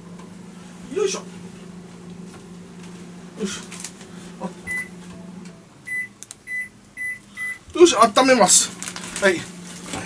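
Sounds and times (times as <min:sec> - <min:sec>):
low steady hum: 0:00.0 - 0:10.0
microwave control panel beeps: 0:04.7 - 0:05.0, 0:05.8 - 0:07.6.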